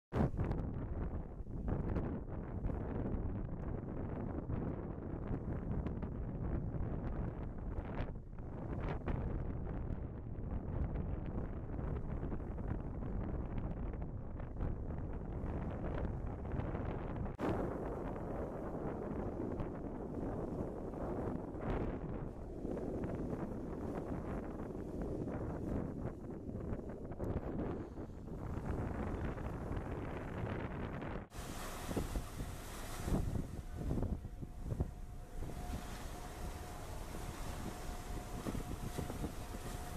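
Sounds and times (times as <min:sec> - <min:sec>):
wind buffeting microphone: 0:00.1 - 0:39.9.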